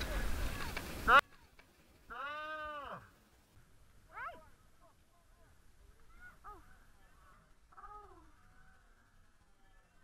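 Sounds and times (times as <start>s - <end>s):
drawn-out vocal cry: 2.1s - 3.2s, 6.1s - 10.0s.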